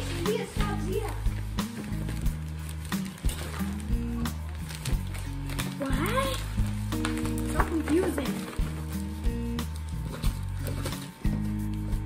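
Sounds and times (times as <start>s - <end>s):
background music with bass line: 0.0s - 12.0s
plastic bag crackling: 0.0s - 12.0s.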